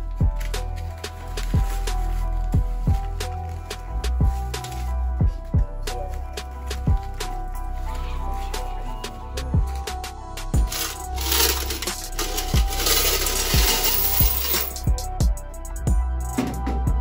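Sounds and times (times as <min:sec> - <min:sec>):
music with deep bass beat: 0:00.0 - 0:17.0
coins pouring and clinking: 0:10.6 - 0:14.9.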